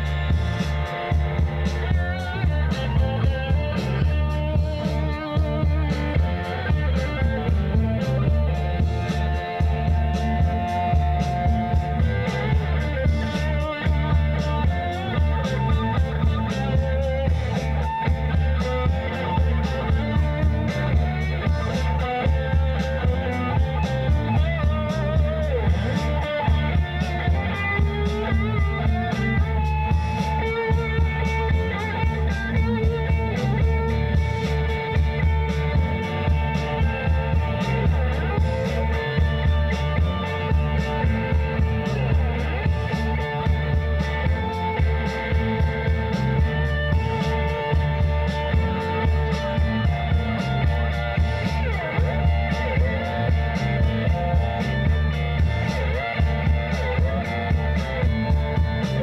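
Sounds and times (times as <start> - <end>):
bass: 0.0 - 59.0
drums: 0.0 - 59.0
electric guitars: 0.0 - 59.0
lead guitar bending notes: 0.0 - 59.0.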